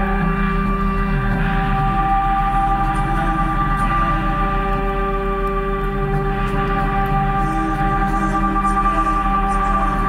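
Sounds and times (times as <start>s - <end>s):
ambient droning band music: 0.0s - 10.0s.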